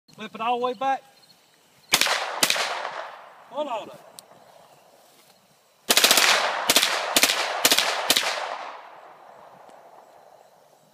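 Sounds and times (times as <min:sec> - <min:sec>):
automatic gunfire bursts: 0:05.9 - 0:08.8.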